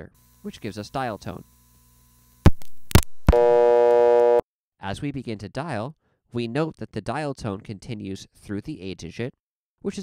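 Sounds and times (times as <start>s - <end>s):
sharp clicks: 2.5s - 3.4s
buzzy telephone dial tone: 3.2s - 4.4s.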